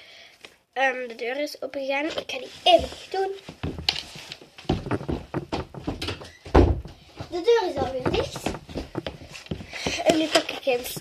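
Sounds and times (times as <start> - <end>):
footsteps on wooden floor: 2.7 - 11.0
door thudding shut: 4.8 - 7.0.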